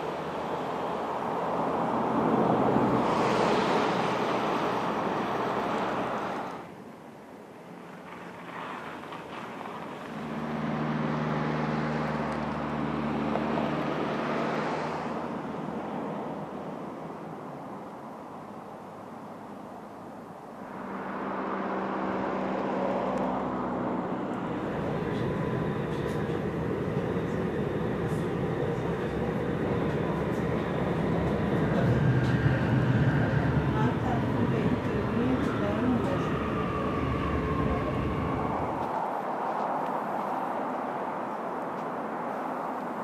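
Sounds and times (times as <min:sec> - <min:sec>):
pitched motor drone: 0:10.0 - 0:15.4, 0:20.6 - 0:28.2
train wheels rumbling on track: 0:20.6 - 0:40.4.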